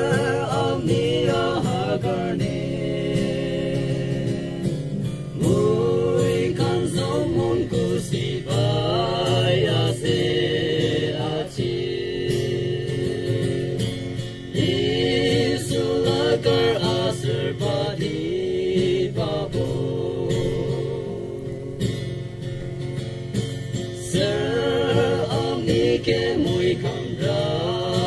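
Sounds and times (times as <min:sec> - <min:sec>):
men singing together: 0:00.0 - 0:22.2, 0:24.0 - 0:28.0
strummed acoustic guitar: 0:00.0 - 0:28.0.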